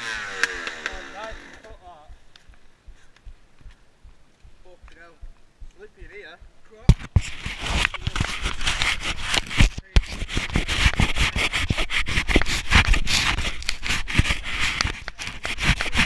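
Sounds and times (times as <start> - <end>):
camera handling rubbing: 6.8 - 16.0.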